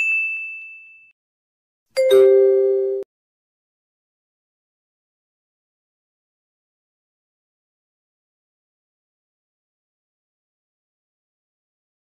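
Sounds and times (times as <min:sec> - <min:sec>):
high electronic ding: 0:02.0 - 0:03.0
lower chime: 0:02.0 - 0:03.0.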